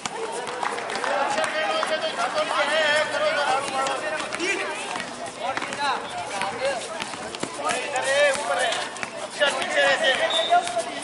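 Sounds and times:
voices calling and talking: 0.0 - 11.0.

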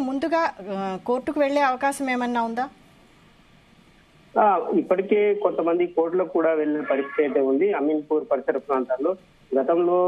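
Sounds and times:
man talking over telephone: 4.4 - 10.0.

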